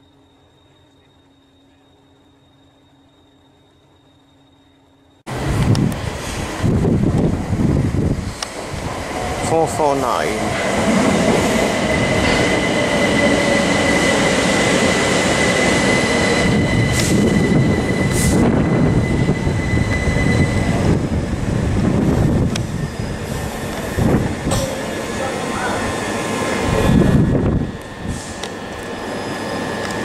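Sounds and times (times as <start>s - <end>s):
steady high whine: 0.0s - 30.0s
train wheel-on-rail noise: 0.0s - 30.0s.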